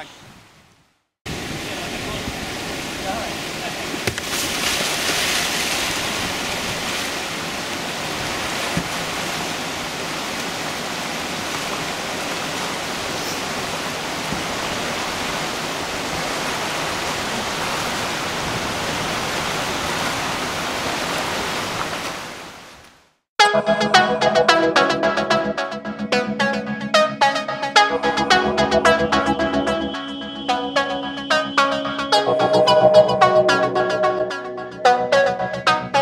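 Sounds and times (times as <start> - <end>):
whitewater rapids rushing: 1.3 - 22.4
kayak splashing into water: 3.9 - 10.4
electronic music: 23.4 - 36.0.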